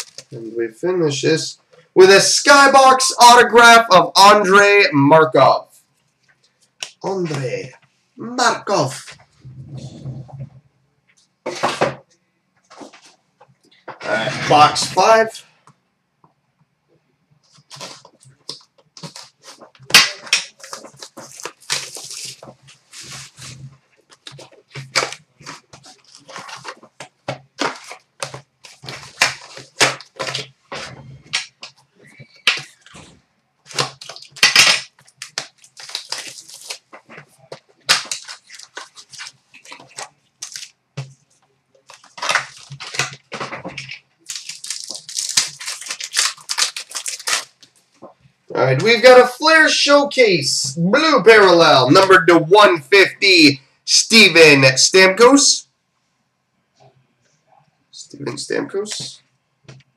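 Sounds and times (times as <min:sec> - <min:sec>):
wrappers crinkling and ripping: 0:00.0 - 0:00.4, 0:17.5 - 0:41.1, 0:41.8 - 0:48.1
cards clicking and rustling: 0:17.4 - 0:48.1.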